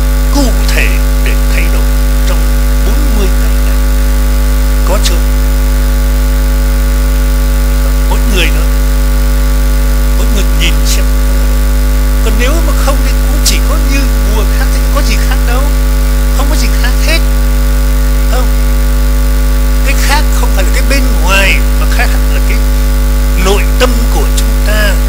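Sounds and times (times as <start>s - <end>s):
loud steady hum: 0.0s - 25.0s
faint voice: 0.3s - 3.8s, 7.8s - 8.8s, 10.2s - 11.2s, 18.2s - 18.6s.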